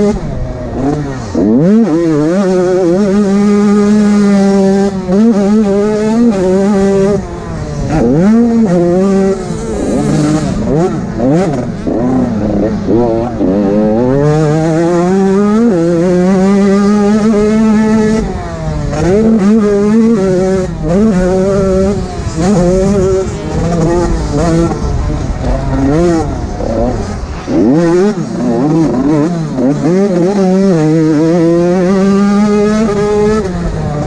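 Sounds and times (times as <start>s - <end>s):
motocross bike engine revving: 0.0s - 34.0s.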